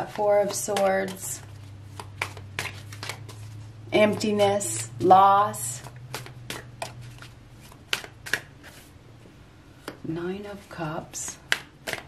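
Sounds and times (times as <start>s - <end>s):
cards being shuffled: 0.0s - 4.8s, 5.8s - 9.0s, 11.5s - 12.0s.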